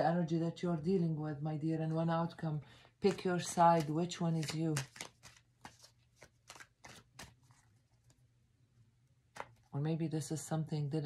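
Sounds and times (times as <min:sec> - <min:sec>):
cards shuffling: 0:03.0 - 0:08.2, 0:09.3 - 0:09.7.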